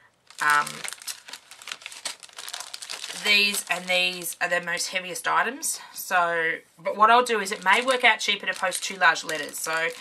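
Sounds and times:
plastic sleeves crinkling: 0:00.0 - 0:05.2, 0:07.2 - 0:10.0.

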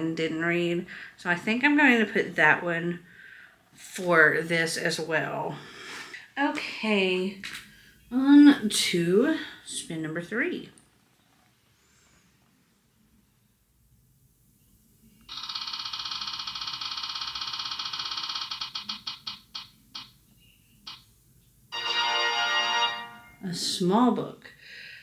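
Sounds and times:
spinning wheel ticking: 0:15.3 - 0:20.2
short chime: 0:21.8 - 0:23.4.

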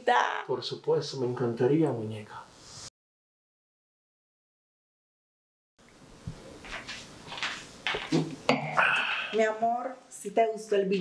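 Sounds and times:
person sipping from a glass: 0:08.5 - 0:09.4.

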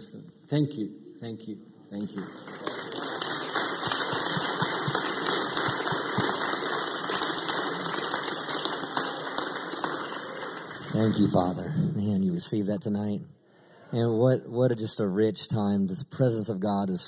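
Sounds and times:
crowd applauding: 0:02.0 - 0:11.7.

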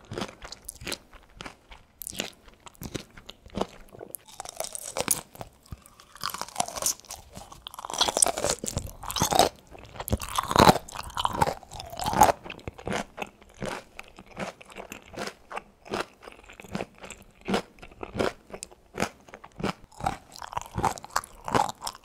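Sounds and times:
chewing crunchy food: 0:00.0 - 0:22.0.

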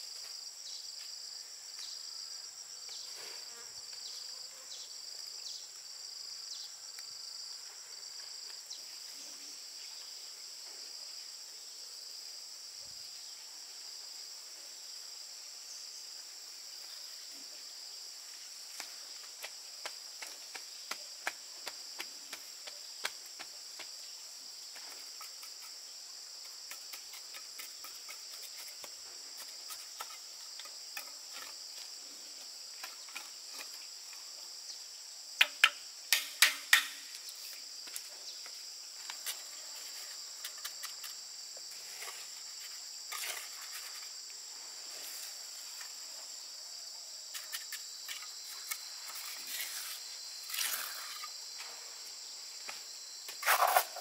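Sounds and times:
insects chirring: 0:00.0 - 0:54.0.

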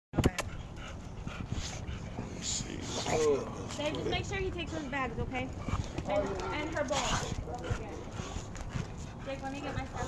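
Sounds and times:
dog panting: 0:00.3 - 0:10.0.

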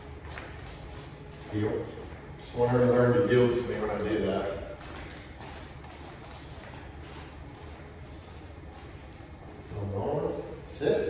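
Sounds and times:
quiet footsteps: 0:00.0 - 0:10.9
low steady room hum: 0:00.0 - 0:11.0
dog claws tapping on hard floor: 0:03.4 - 0:07.8.

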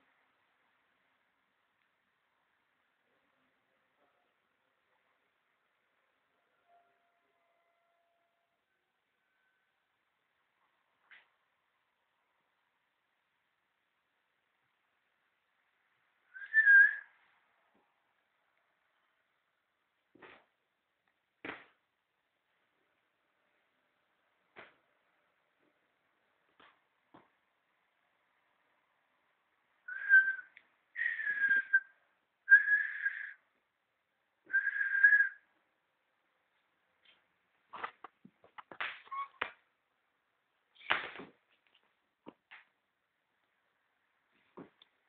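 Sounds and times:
person whistling short note: 0:29.9 - 0:31.9, 0:32.5 - 0:33.4.

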